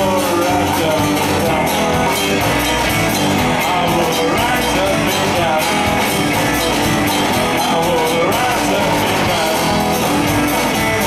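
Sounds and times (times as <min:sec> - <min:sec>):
bass: 0:00.0 - 0:11.0
drums: 0:00.0 - 0:11.0
guitar with bending notes: 0:00.0 - 0:11.0
strummed acoustic guitar: 0:00.0 - 0:11.0.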